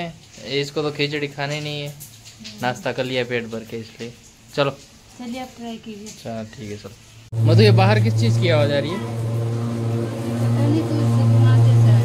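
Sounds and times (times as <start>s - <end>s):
machine running with low drone: 7.4s - 12.0s.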